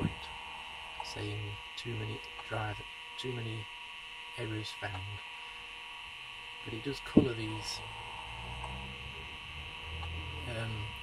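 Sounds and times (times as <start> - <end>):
computer hum and hard drive whine: 0.0 - 11.0.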